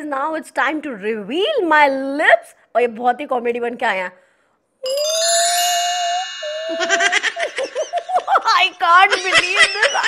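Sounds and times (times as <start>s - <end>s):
bright musical note: 4.8s - 8.1s
woman laughing and talking: 6.8s - 10.0s.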